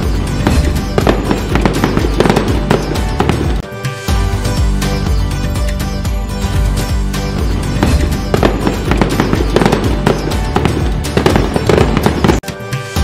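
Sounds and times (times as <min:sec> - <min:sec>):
firework bangs and crackles: 0:00.0 - 0:03.6, 0:07.8 - 0:12.5
festive background music: 0:00.0 - 0:13.0.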